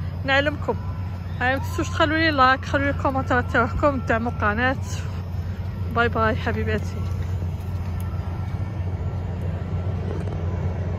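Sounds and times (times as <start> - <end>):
fairground machinery rumble: 0.0 - 10.9.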